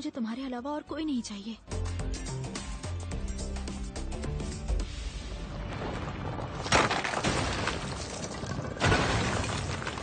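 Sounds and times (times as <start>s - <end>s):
rock cracking and shattering: 5.7s - 10.0s.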